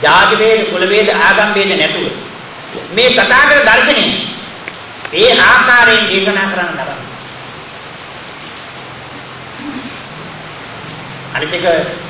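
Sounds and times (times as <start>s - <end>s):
recording hiss: 0.0s - 12.0s
man's voice: 2.8s - 4.4s, 5.1s - 7.1s.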